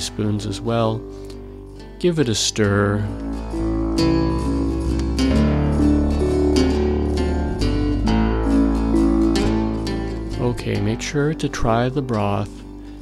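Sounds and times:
plucked acoustic guitar: 0:00.0 - 0:13.0
sustained low bass: 0:01.7 - 0:12.8.

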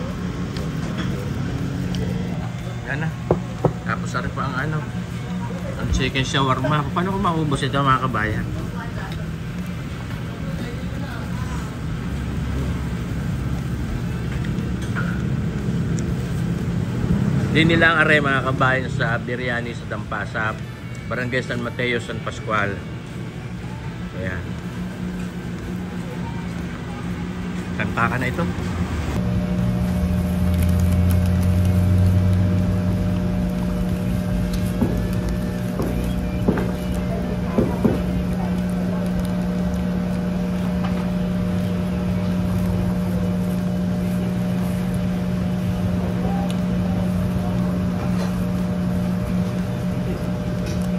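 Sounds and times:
faint voices: 0:00.0 - 0:15.3, 0:17.3 - 0:29.4, 0:31.2 - 0:50.9
faint hum: 0:22.1 - 0:50.9
low background rumble: 0:28.9 - 0:50.9.

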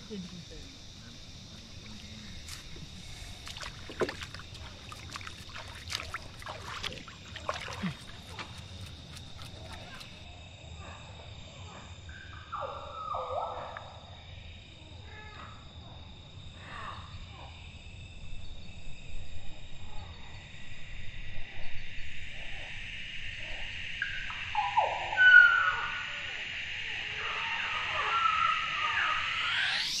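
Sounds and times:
high-pitched insect chorus: 0:00.0 - 0:30.0
falling animal calls: 0:24.4 - 0:26.4, 0:27.0 - 0:30.0.

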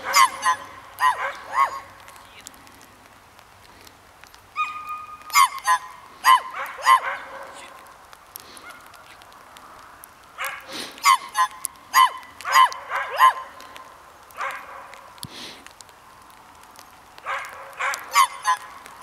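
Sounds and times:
dog yipping barks: 0:00.0 - 0:02.0, 0:04.6 - 0:07.7, 0:10.4 - 0:13.6, 0:14.4 - 0:15.0, 0:17.2 - 0:18.7.

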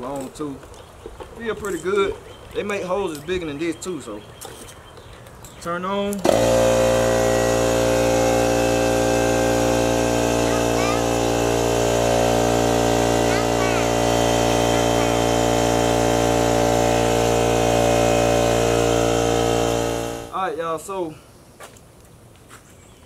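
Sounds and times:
air compressor running: 0:06.2 - 0:20.4.

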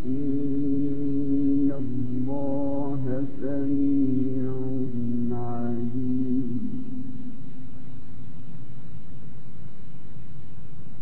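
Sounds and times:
man chanting melodically: 0:00.0 - 0:07.5.

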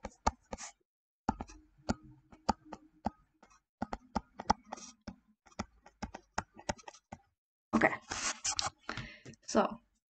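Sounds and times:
stylus tapping on tablet screen: 0:00.0 - 0:07.3.

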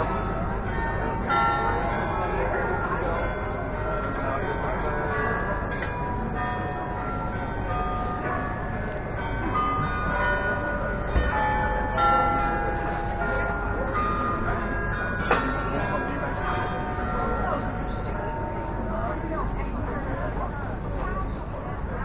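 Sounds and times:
church bells ringing: 0:00.0 - 0:20.5
steady background noise: 0:00.0 - 0:22.0.

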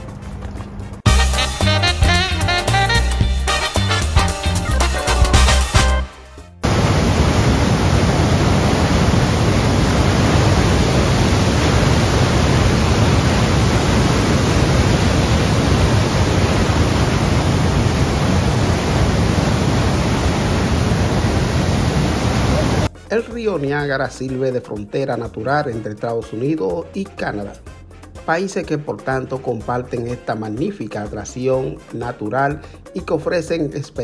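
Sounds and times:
waterfall roaring: 0:06.6 - 0:22.9.

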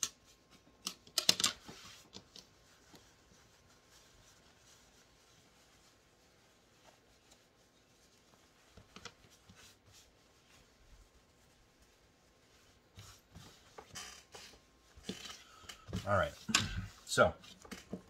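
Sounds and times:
hands rubbing cloth: 0:00.0 - 0:18.0
cloth rustling: 0:00.1 - 0:18.0.

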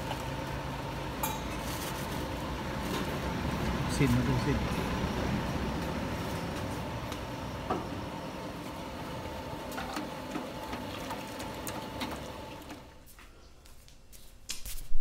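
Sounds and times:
noodle stall background noise: 0:00.0 - 0:14.5.

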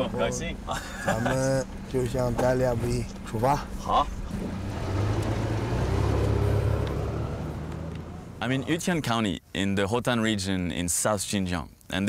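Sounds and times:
car engine: 0:00.0 - 0:09.1
road noise: 0:00.0 - 0:09.5.

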